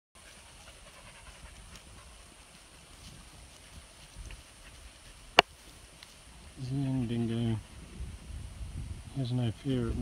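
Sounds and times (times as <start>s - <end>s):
steady high hiss: 0.2s - 10.0s
wind rumble on microphone: 6.2s - 10.0s.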